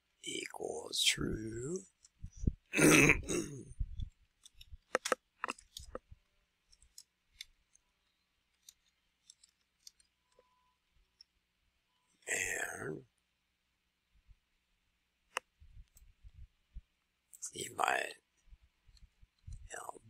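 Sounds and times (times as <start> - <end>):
throat noise: 2.3 - 4.1.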